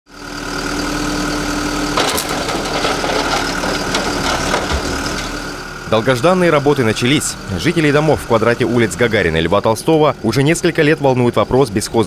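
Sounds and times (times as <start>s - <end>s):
diesel engine running: 0.1s - 12.0s.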